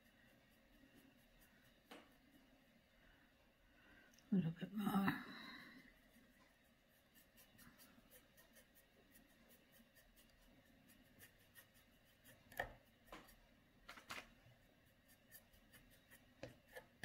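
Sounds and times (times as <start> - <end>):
paintbrush strokes on canvas: 0.0 - 3.2, 5.4 - 13.6, 14.2 - 17.0.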